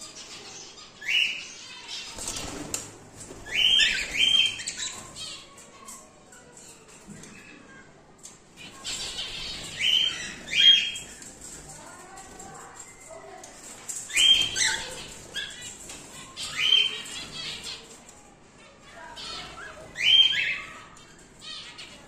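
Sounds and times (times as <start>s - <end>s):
soft background bird calls: 0.0s - 22.0s
cockatiels calling loudly: 3.4s - 5.6s, 8.6s - 11.2s, 14.1s - 18.0s, 19.0s - 22.0s.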